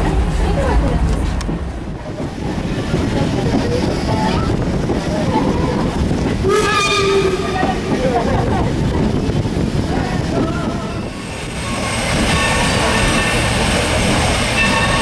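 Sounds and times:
train wheels rumbling on rail: 0.0 - 15.0.

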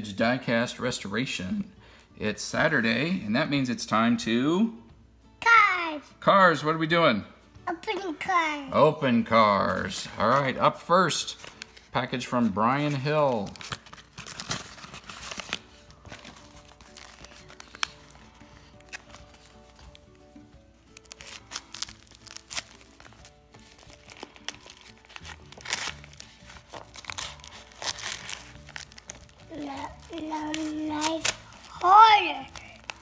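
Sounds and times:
envelope crinkling and crackling: 9.7 - 20.2, 20.8 - 33.0
knife slitting envelope: 13.5 - 19.6, 21.0 - 29.2.

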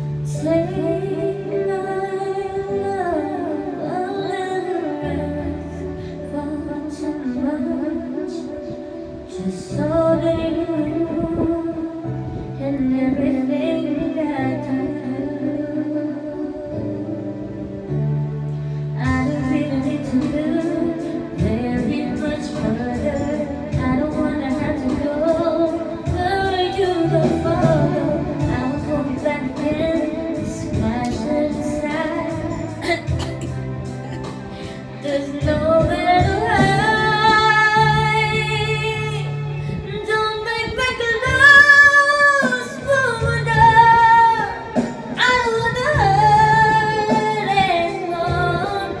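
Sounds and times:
instrumental accompaniment: 0.0 - 49.0
woman singing into microphone: 0.0 - 49.0.

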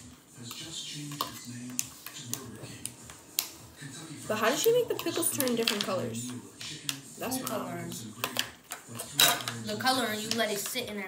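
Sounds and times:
metal spoon clicking on plastic bowl: 4.6 - 6.0.

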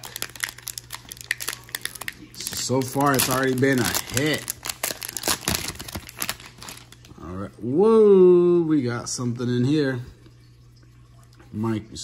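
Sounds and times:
plastic wrapper crinkling: 0.0 - 7.2.

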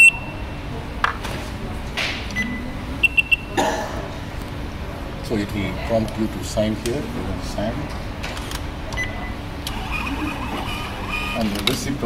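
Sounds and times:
receipt printer whirring: 9.6 - 12.0.

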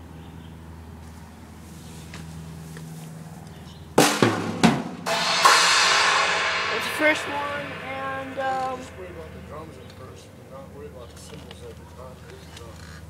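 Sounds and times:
sharp drum strokes: 4.0 - 10.4
cymbal crash ringing: 4.0 - 10.5.

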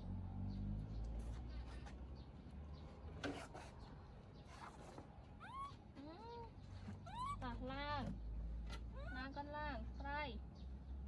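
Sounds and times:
baby monkey crying: 5.4 - 7.8, 8.9 - 9.4.

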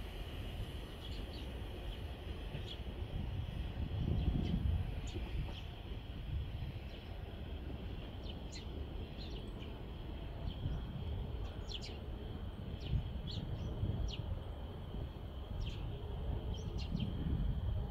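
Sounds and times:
small birds chirping: 8.1 - 12.2.

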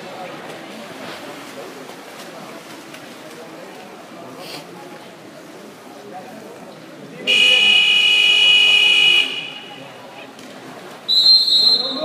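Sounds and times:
echoing pool hall noise: 0.0 - 12.0
referee's whistle blowing: 7.3 - 9.8, 11.1 - 12.0.

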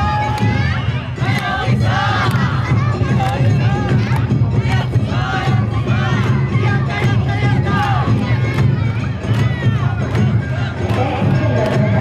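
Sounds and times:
low rumble of crowd: 0.0 - 12.0.

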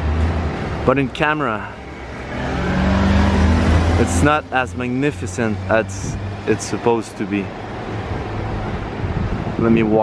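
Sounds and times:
street traffic: 0.0 - 10.0
motor scooter engine passing: 1.8 - 4.8.

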